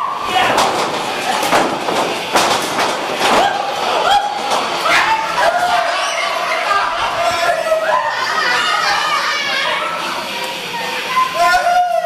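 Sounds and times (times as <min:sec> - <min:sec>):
bodies hitting wrestling ring: 0:00.3 - 0:03.6.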